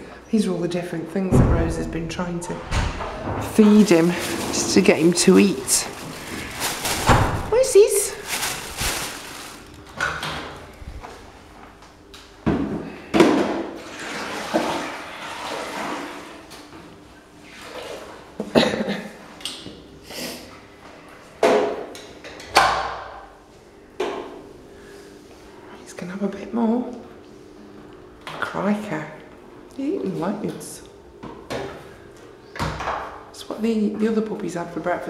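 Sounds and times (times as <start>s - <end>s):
sudden knocks and thumps: 1.3s - 5.4s
indistinct voices: 1.3s - 6.6s.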